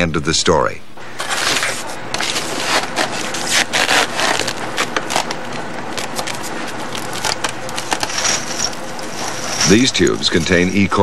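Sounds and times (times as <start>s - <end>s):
gloved hand scraping frosty shelves: 1.0s - 11.0s
racks rubbing against frosty shelves: 7.8s - 11.0s.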